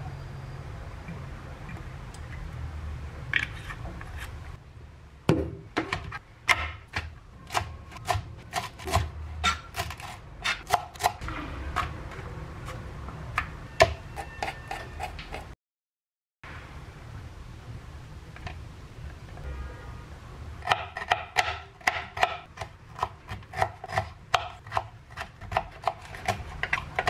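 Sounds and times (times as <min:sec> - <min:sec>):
knife chopping on cutting board: 0:05.4 - 0:11.2, 0:20.6 - 0:27.0.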